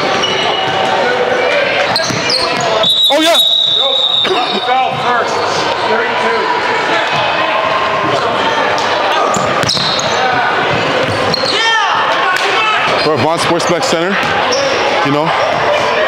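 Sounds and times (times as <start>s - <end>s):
sneaker squeaks: 0.0s - 0.9s, 1.8s - 5.7s, 9.2s - 10.4s, 11.0s - 11.8s, 14.2s - 14.9s
ball bouncing on hardwood court: 2.0s - 2.7s, 9.4s - 11.4s.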